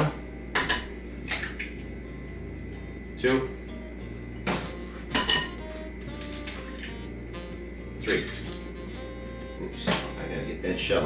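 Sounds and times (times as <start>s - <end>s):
low hum: 0.0s - 10.7s
eggshell cracking: 0.5s - 1.8s.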